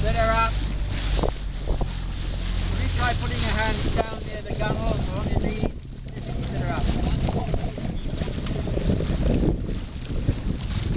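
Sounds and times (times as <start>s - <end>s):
water washing from boat: 0.0s - 10.9s
wind buffeting microphone: 0.0s - 10.9s
person's voice: 2.7s - 7.7s.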